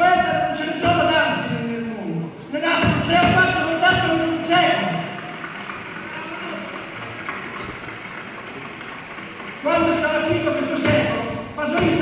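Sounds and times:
low even room hiss: 0.0s - 12.0s.

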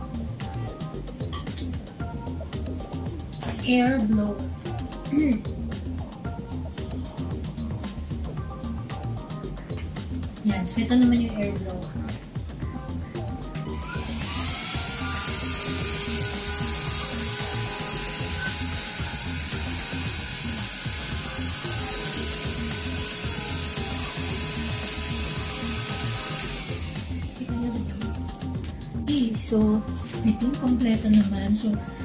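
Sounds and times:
handheld vacuum motor whine: 13.7s - 28.2s.

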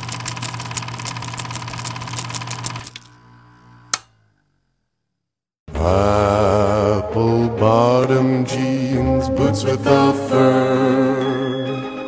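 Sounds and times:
film projector clatter: 0.0s - 3.2s
sharp click: 3.9s - 4.2s.

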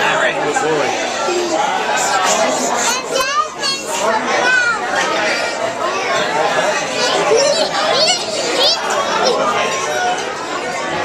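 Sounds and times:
children's voices: 0.0s - 11.0s
crowd chatter: 0.0s - 11.0s.

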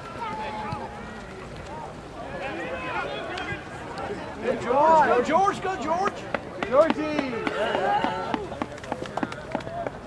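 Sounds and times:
spectators shouting: 0.0s - 8.8s.

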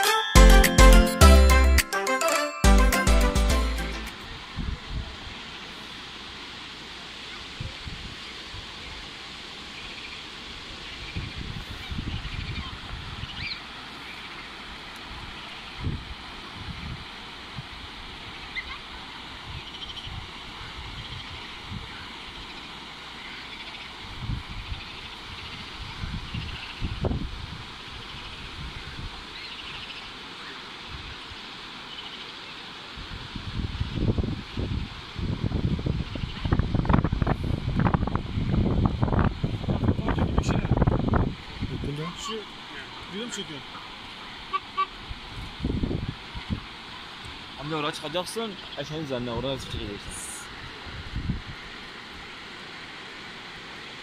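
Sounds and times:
steady outdoor hiss: 0.0s - 54.0s
wind buffeting microphone: 11.0s - 13.5s, 15.8s - 17.8s, 24.0s - 27.8s, 33.0s - 42.2s, 44.9s - 46.7s, 49.7s - 51.7s.

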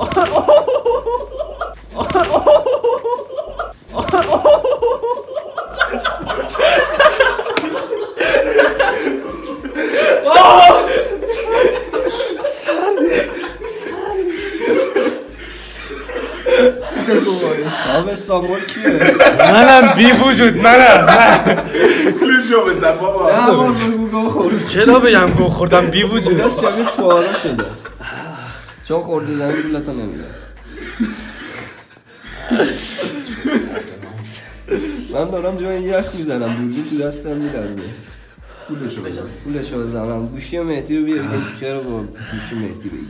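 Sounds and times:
man laughing: 0.0s - 23.8s, 24.4s - 28.6s, 32.4s - 35.4s
man speaking: 16.8s - 27.9s.

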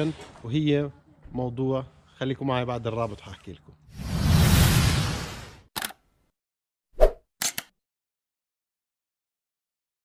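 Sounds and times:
whoosh: 4.0s - 5.7s
short sharp click: 7.4s - 7.7s.

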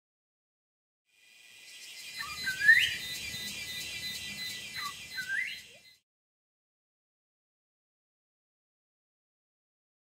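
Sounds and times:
bird rising calls: 1.7s - 6.0s.

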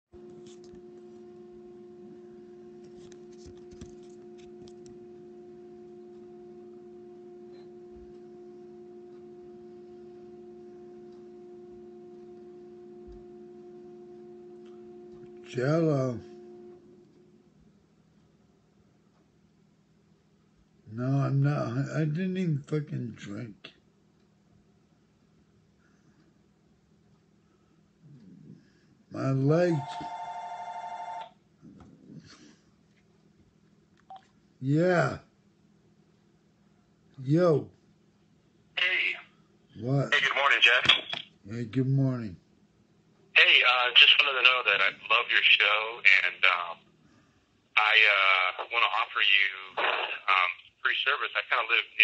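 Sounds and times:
steady hum of constant tones: 0.2s - 19.4s, 27.4s - 32.7s, 38.8s - 52.0s
telephone two-tone ring: 29.6s - 31.3s.

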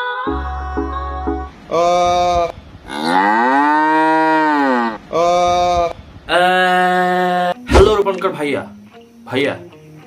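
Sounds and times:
cow mooing: 1.9s - 7.6s.

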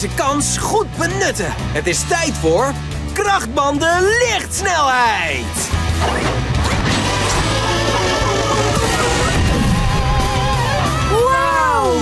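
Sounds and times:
energetic background music: 0.0s - 12.0s.

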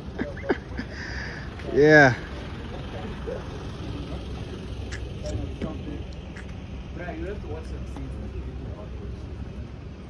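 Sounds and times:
truck engine rumbling past: 0.0s - 10.0s.

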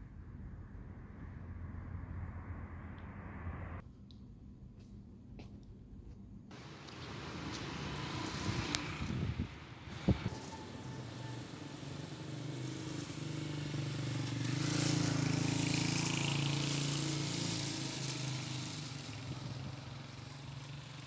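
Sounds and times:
vehicle engine hum passing: 0.0s - 3.8s, 6.5s - 21.0s
outdoor street noise: 0.0s - 21.0s.

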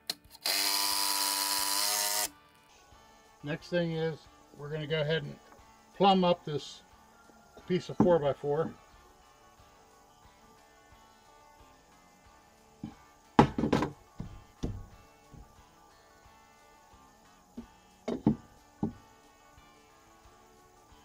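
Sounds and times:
soft background music: 0.0s - 21.0s
spirit level knocking on wood: 12.8s - 15.5s, 18.1s - 19.0s.

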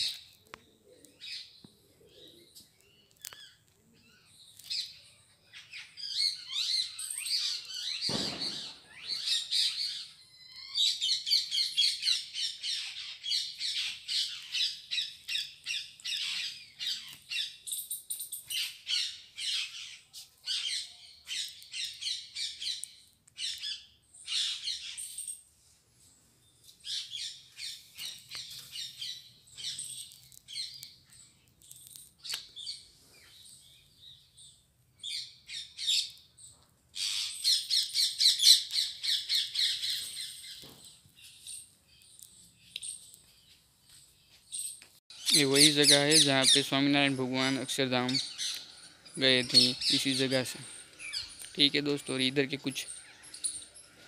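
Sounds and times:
small birds chirping: 0.0s - 54.0s.

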